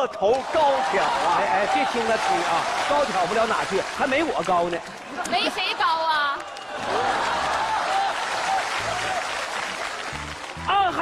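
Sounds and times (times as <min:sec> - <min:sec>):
audience applauding: 0:00.3 - 0:11.0.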